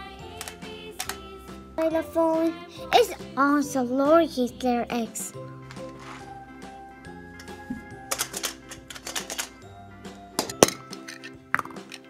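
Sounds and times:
children's background music: 0:00.0 - 0:12.0
plastic egg clicking and clinking: 0:00.3 - 0:01.2, 0:07.4 - 0:09.6, 0:10.4 - 0:12.0
plastic snap: 0:00.4 - 0:01.2.

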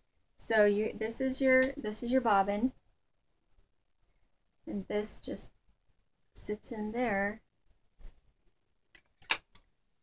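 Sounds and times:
wooden spindle clicks and knocks: 0:08.9 - 0:09.7.

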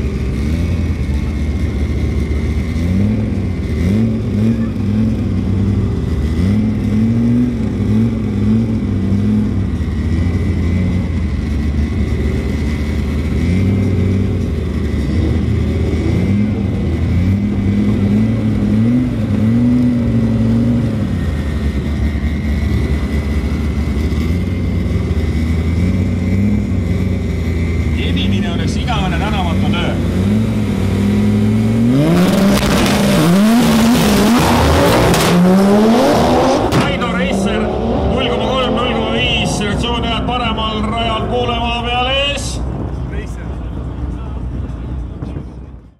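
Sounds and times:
cars accelerating away: 0:00.0 - 0:45.6
car engines revving: 0:00.0 - 0:45.9.

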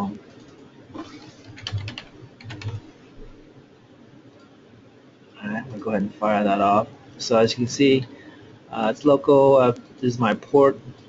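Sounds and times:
computer keyboard keystrokes: 0:01.4 - 0:02.8.

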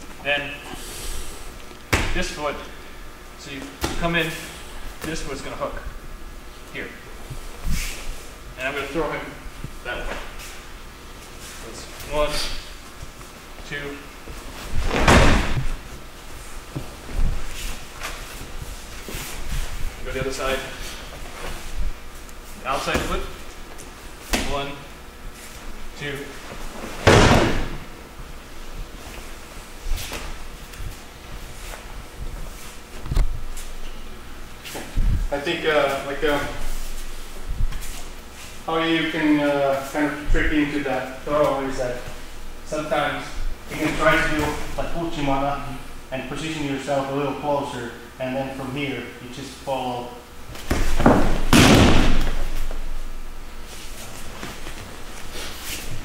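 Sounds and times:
rustling as people roll: 0:14.2 - 0:22.2
bodies thudding on mat: 0:14.6 - 0:15.8, 0:26.8 - 0:27.9, 0:50.6 - 0:52.8
breakfall slap: 0:14.9 - 0:15.7, 0:27.0 - 0:27.8, 0:50.6 - 0:52.5.

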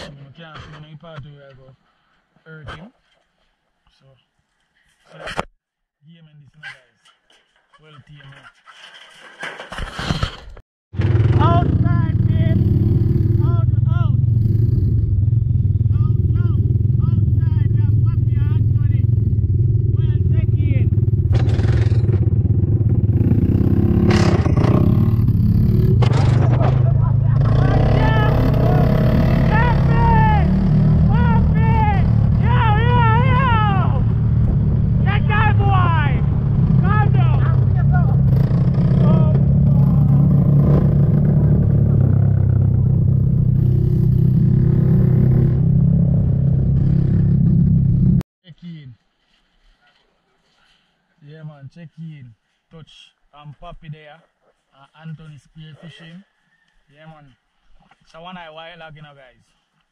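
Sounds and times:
quad bike engine running: 0:11.0 - 0:35.0, 0:35.8 - 0:48.2
knocks from bumps: 0:25.9 - 0:27.0.

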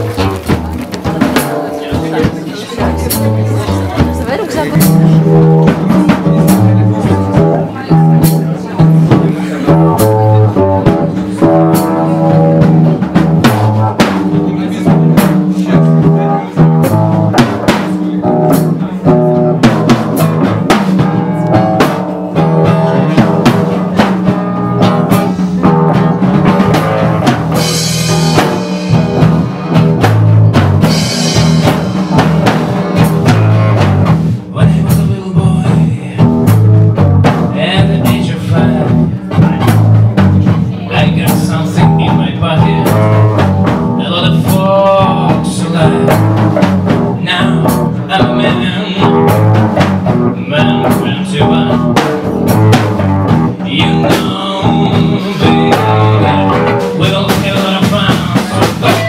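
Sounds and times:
drum kit beat: 0:00.0 - 0:59.0
rock band playing: 0:00.0 - 0:59.0.

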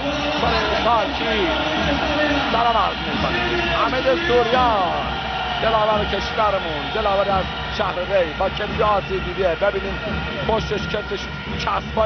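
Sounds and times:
arena crowd din: 0:00.0 - 0:12.0
commentator speaking: 0:00.0 - 0:12.0.

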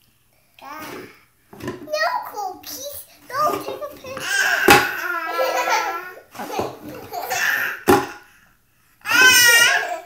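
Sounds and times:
baby laughing: 0:03.3 - 0:08.2, 0:09.1 - 0:10.0.

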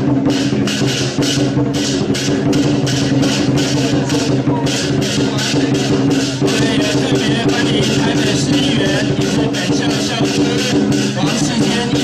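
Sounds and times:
cymbals clashing: 0:00.0 - 0:12.0.

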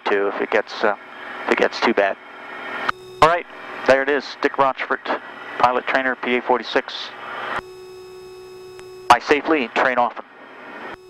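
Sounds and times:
steady low electronic tone: 0:02.8 - 0:11.0
click: 0:08.7 - 0:08.9.

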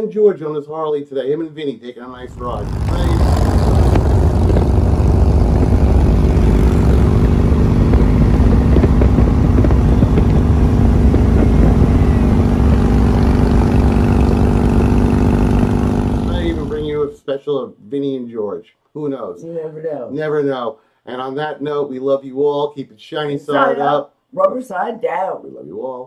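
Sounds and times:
motorcycle engines running: 0:02.2 - 0:17.1.

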